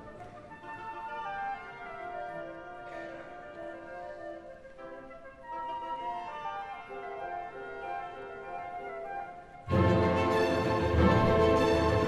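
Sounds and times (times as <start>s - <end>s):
flute line: 0.0s - 12.0s
orchestra playing classical music: 0.0s - 12.0s.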